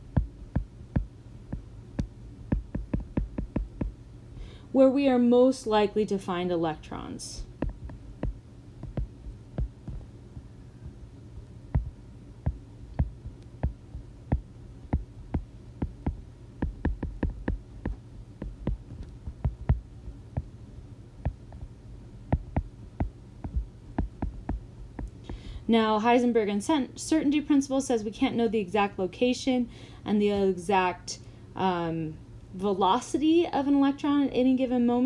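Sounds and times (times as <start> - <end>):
steady low hum: 0.0 - 35.0
stylus tapping on glass screen: 0.1 - 4.0, 7.6 - 10.1, 11.8 - 19.8, 22.3 - 25.2.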